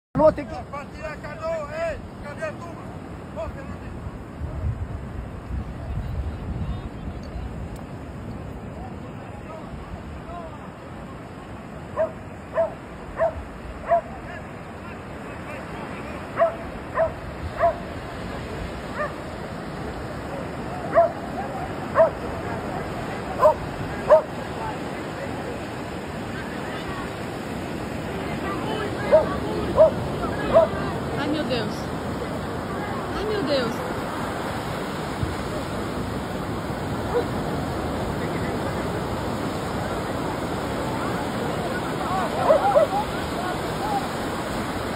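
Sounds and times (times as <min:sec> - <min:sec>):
surf: 0:00.2 - 0:44.9
dog barking: 0:12.0 - 0:14.1, 0:16.4 - 0:17.9, 0:18.9 - 0:19.2, 0:20.9 - 0:21.2, 0:21.9 - 0:22.2, 0:23.4 - 0:24.4, 0:29.1 - 0:30.8, 0:37.1 - 0:37.4, 0:42.4 - 0:43.1.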